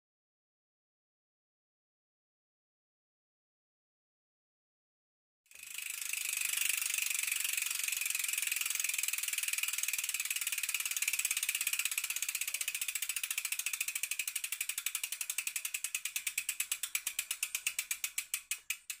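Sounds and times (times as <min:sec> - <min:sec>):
bicycle freewheel ticking: 0:05.5 - 0:19.0.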